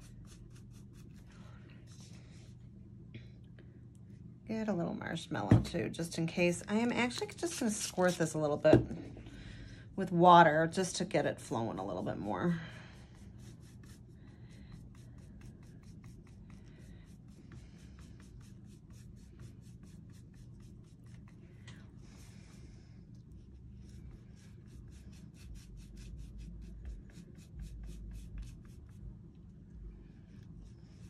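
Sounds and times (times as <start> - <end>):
paintbrush scratchy rubbing: 12.9 - 21.4.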